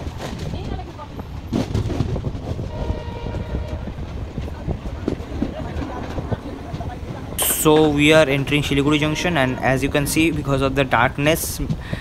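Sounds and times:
clatter over rail joints: 0:00.0 - 0:12.0
train wheels rumbling: 0:00.0 - 0:12.0.

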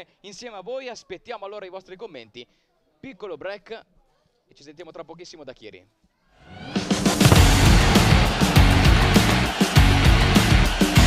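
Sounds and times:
loud music with heavy beat: 0:07.1 - 0:11.0.

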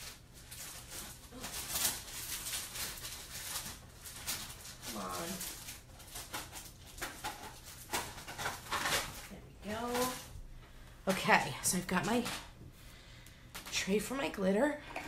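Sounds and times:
rummaging clicks and rustles: 0:00.2 - 0:10.4.

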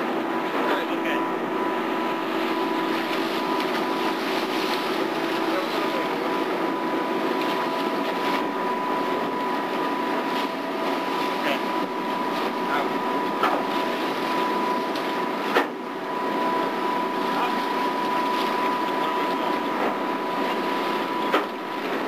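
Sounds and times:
boat engines droning: 0:00.0 - 0:22.0
high machinery whine: 0:00.0 - 0:22.0.

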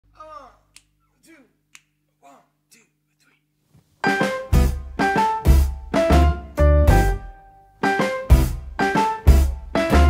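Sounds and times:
finger snaps: 0:00.7 - 0:01.0, 0:01.7 - 0:02.0.

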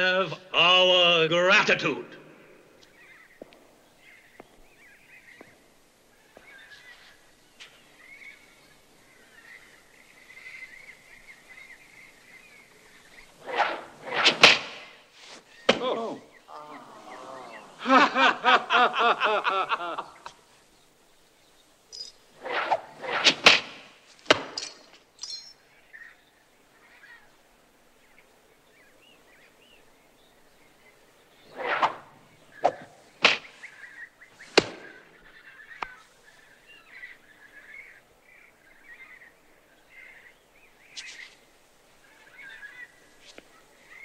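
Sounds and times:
darts whooshing through air: 0:13.4 - 0:15.9, 0:22.4 - 0:24.6, 0:31.5 - 0:33.7
darts thunking into apples: 0:13.5 - 0:15.0, 0:15.6 - 0:16.1, 0:22.4 - 0:24.9, 0:31.6 - 0:33.6, 0:34.5 - 0:35.0.

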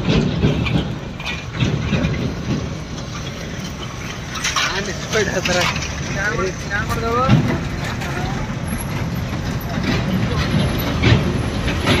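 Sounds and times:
road traffic rumble: 0:00.0 - 0:12.0
truck passing: 0:00.0 - 0:12.0.

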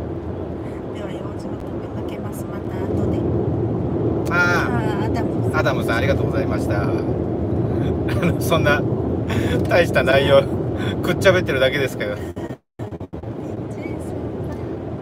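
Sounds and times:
car road and engine noise: 0:00.0 - 0:15.0
people talking: 0:00.6 - 0:03.3, 0:04.3 - 0:07.1, 0:07.8 - 0:14.6.

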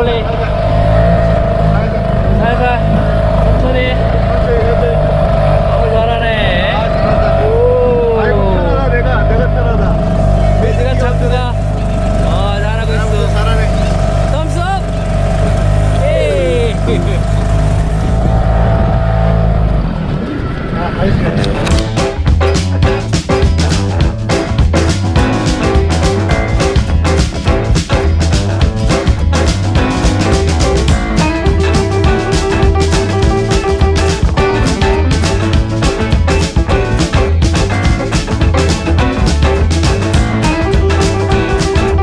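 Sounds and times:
motorboat engine droning: 0:00.0 - 0:42.0.

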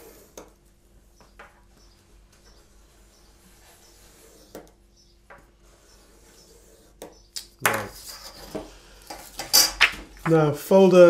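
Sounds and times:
pen drawing along ruler: 0:02.4 - 0:07.2.

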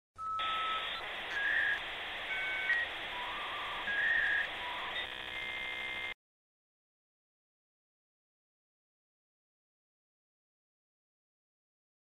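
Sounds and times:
short electronic beeps: 0:00.2 - 0:06.2
steady hiss: 0:00.8 - 0:05.0.

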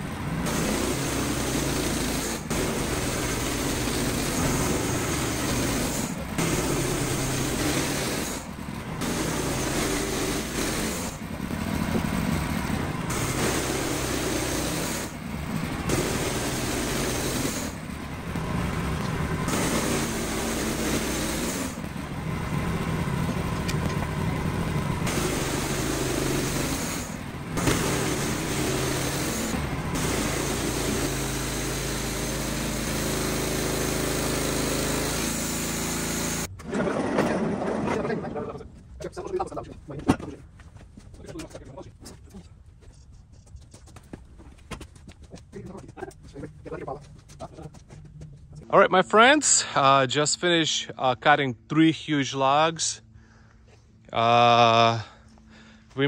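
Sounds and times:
band sawmill cutting log: 0:00.0 - 0:36.5.

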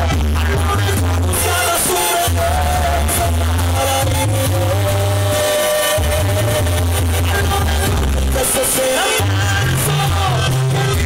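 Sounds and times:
tuba bass line: 0:00.0 - 0:11.0
brass band music: 0:00.4 - 0:11.0
horns holding notes: 0:01.3 - 0:10.3.

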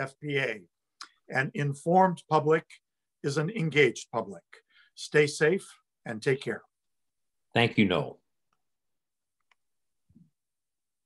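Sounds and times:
man speaking: 0:00.0 - 0:06.7.

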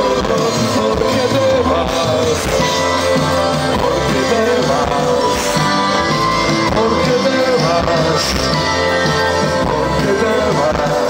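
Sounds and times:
lead singer singing: 0:00.0 - 0:11.0
live rock band playing: 0:00.0 - 0:11.0.

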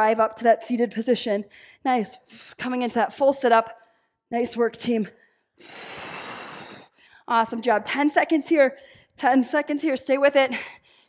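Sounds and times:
woman exhaling forcefully: 0:05.6 - 0:07.0.

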